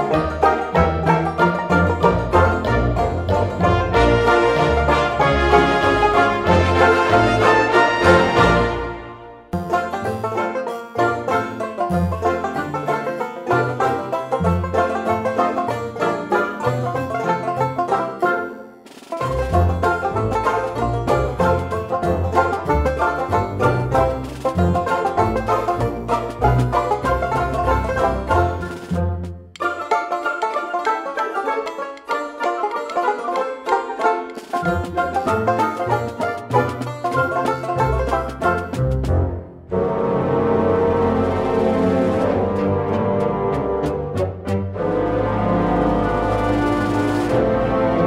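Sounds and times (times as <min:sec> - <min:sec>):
bass line: 0:00.0 - 0:17.6, 0:19.2 - 0:29.6, 0:34.6 - 0:48.0
banjo-like plucked string music: 0:00.0 - 0:48.0.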